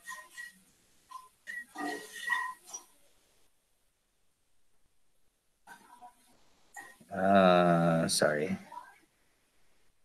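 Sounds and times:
man murmuring: 7.1 - 8.2.

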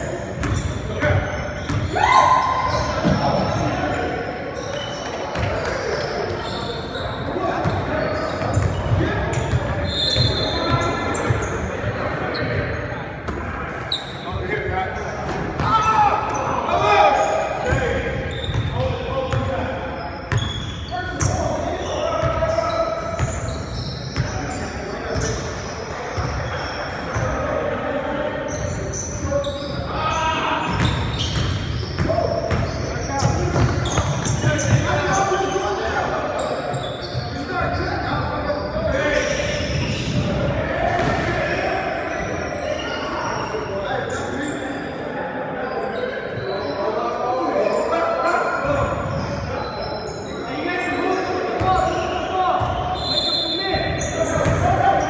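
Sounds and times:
players calling out: 0.2 - 27.9.

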